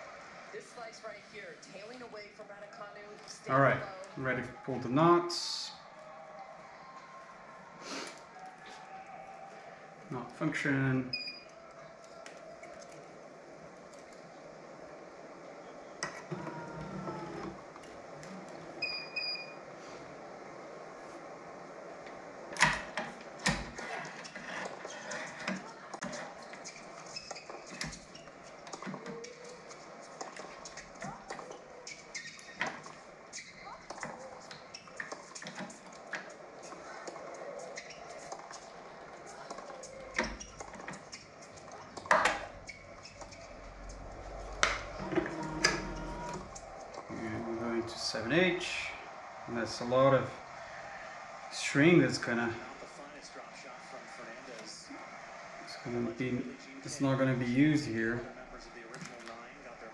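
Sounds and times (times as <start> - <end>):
tv sports commentary: 0.0 - 59.9.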